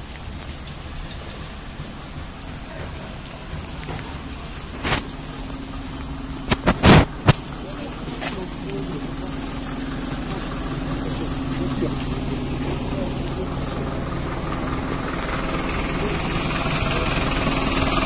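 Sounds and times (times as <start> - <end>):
engine idling: 0.0 - 18.0.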